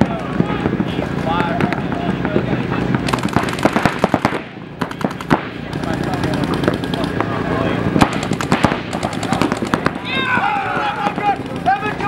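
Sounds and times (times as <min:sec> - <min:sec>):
paintball markers firing: 0:03.0 - 0:07.3, 0:08.0 - 0:11.9.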